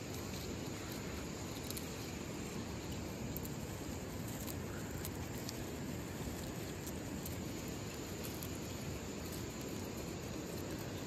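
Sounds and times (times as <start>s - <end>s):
crickets trilling: 0.0s - 11.0s
goats chewing grass: 0.0s - 11.0s.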